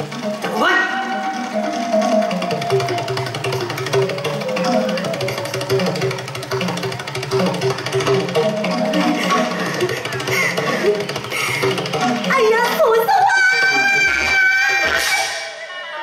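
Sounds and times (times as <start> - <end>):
struck melody notes: 0.0 - 13.3
small percussion beat: 0.0 - 15.2.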